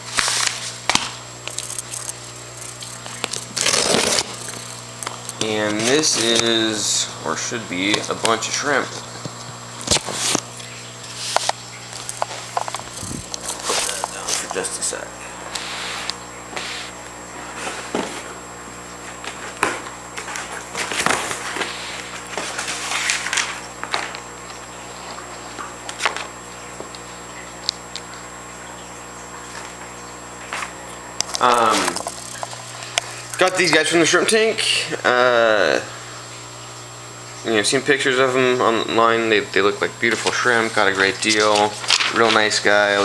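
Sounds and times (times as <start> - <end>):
steady low hum: 0.0 - 43.0
cardboard box being opened: 3.4 - 4.3.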